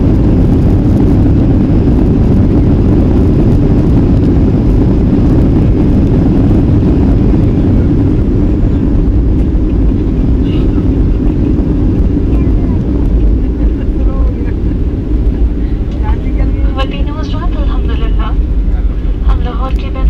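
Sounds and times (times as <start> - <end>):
airliner cabin rumble: 0.0 - 20.0
voices: 15.8 - 20.0.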